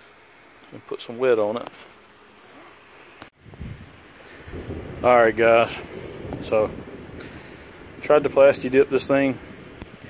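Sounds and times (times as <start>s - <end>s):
wind buffeting microphone: 3.4s - 10.0s.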